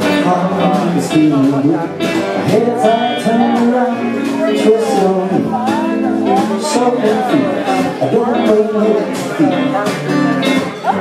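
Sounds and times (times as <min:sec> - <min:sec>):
acoustic guitar strumming: 0:00.0 - 0:11.0
man singing into a microphone: 0:00.0 - 0:11.0.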